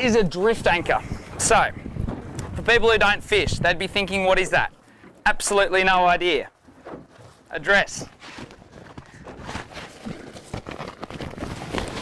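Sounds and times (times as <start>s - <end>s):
fabric rustling and crinkling: 8.0s - 12.0s.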